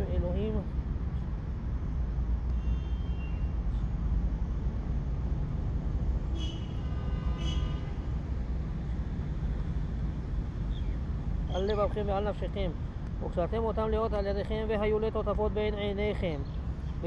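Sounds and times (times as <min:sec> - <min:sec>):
low rumble of vehicle noise: 0:00.0 - 0:17.0.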